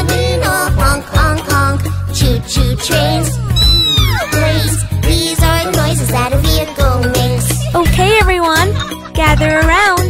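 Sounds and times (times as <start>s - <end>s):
upbeat children's song: 0.0s - 10.0s.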